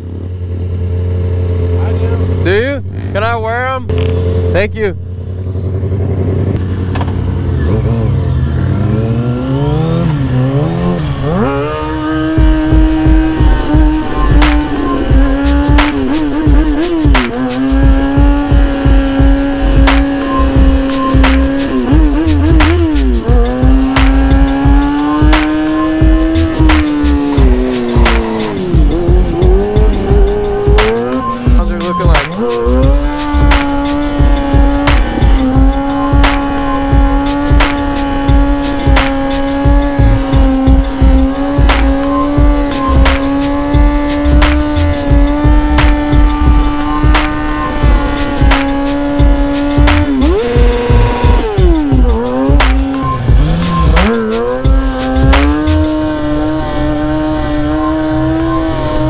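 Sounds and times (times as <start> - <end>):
motorcycle engine: 0.0 - 59.0
background music with steady beat: 10.8 - 57.3.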